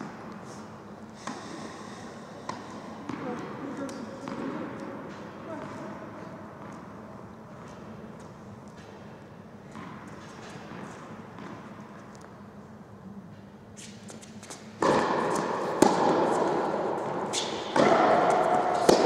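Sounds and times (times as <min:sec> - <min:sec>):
tennis ball bouncing on hard court: 0:02.4 - 0:05.9, 0:06.6 - 0:06.9, 0:09.7 - 0:12.0, 0:14.1 - 0:19.0.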